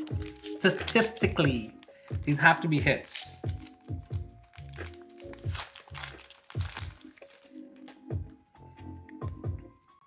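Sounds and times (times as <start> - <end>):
foil wrapper crinkling: 0.0 - 8.2
background music with beat: 0.0 - 10.0.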